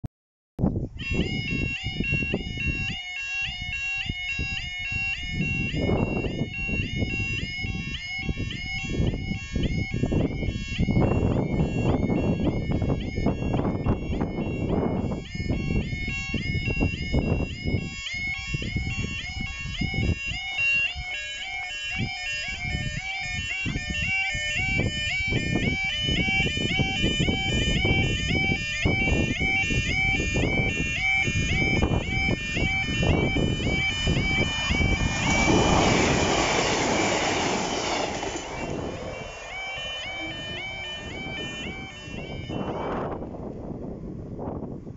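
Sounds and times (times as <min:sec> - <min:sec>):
level crossing alarm warbling: 0:01.0 - 0:43.5.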